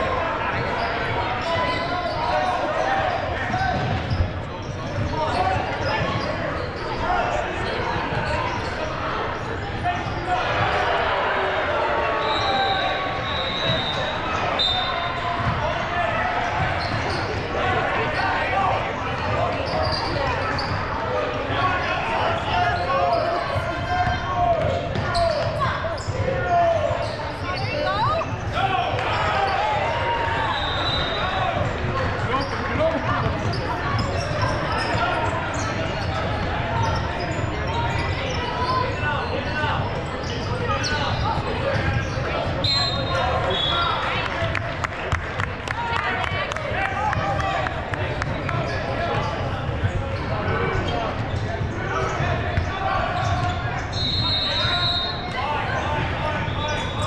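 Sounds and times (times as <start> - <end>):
echoing indistinct voices: 0.0 - 57.0
sneaker squeaks: 0.5 - 10.8, 12.1 - 44.1, 48.1 - 57.0.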